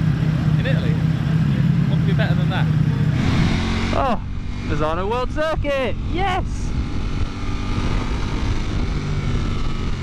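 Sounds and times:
motorcycle engine at speed: 0.0s - 10.0s
wind rushing over microphone: 3.2s - 10.0s.

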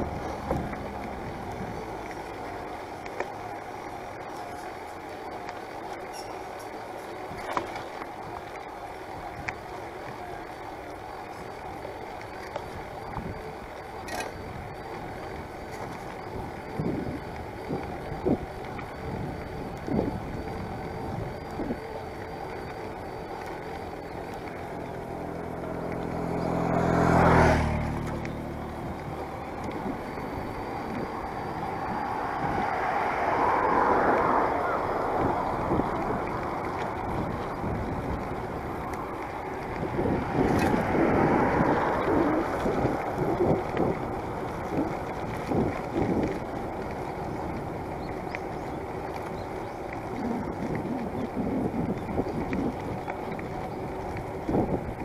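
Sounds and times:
car passing: 0.0s - 5.6s, 7.5s - 55.0s
traffic: 0.0s - 55.0s
vehicle approaching: 0.0s - 55.0s
wind noise: 12.6s - 55.0s.

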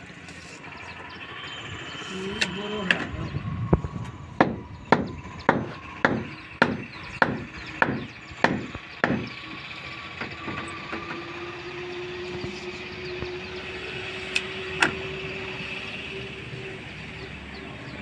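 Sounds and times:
steady low hum: 0.0s - 18.0s
hammer blows on wooden boards: 4.4s - 9.4s.

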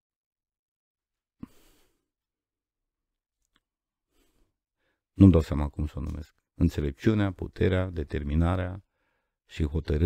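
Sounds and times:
faint breath: 1.4s - 2.1s, 4.1s - 5.0s, 8.9s - 9.4s.

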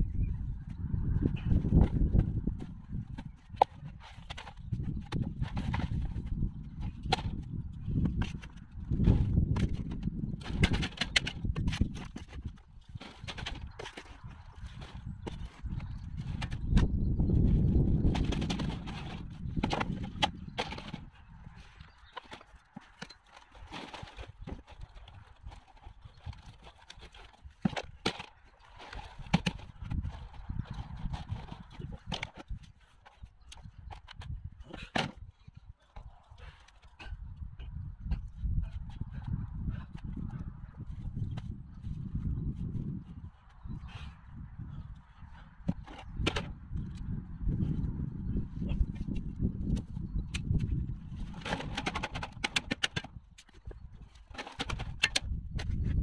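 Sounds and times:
scattered clicks and knocks: 51.3s - 55.8s.

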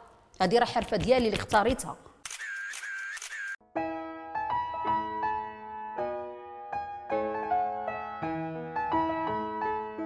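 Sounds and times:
piano music: 3.6s - 10.0s.

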